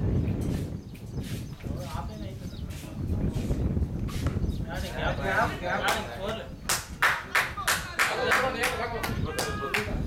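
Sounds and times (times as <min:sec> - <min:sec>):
voices talking: 0:01.5 - 0:03.6, 0:04.3 - 0:10.0
hands clapping: 0:05.8 - 0:10.0.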